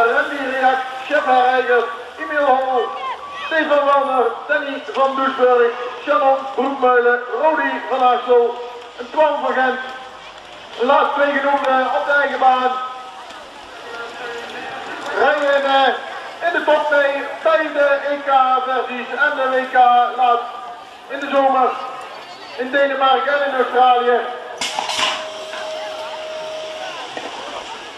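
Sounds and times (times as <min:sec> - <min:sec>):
open-air background noise: 0:00.0 - 0:27.9
faint indistinct voices: 0:23.7 - 0:27.9
gate and bikes clattering: 0:24.6 - 0:26.2
long electronic tone: 0:24.9 - 0:27.9.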